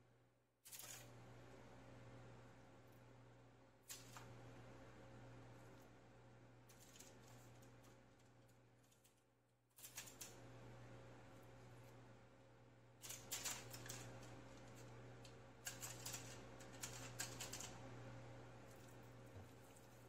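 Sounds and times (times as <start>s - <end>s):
steady low hum: 0.0s - 20.0s
aluminium foil crinkling: 0.7s - 1.1s, 6.7s - 9.2s, 13.0s - 14.9s, 15.6s - 17.7s.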